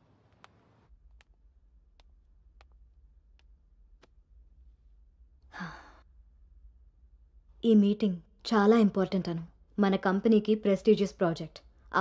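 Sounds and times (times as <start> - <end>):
faint low hum: 0.0 - 12.0
person sighing: 5.5 - 6.1.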